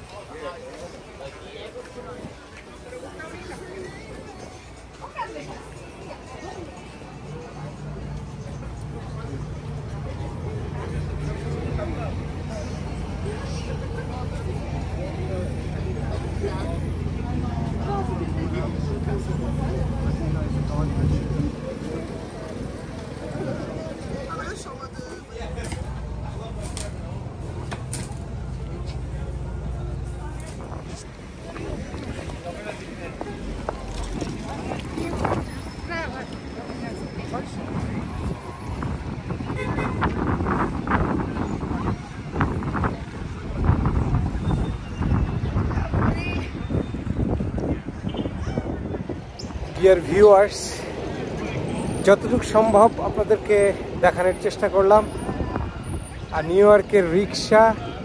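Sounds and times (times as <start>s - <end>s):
low traffic rumble: 0.0s - 58.0s
voices of people passing: 0.0s - 58.0s
wind on microphone: 36.7s - 49.8s, 55.0s - 56.4s.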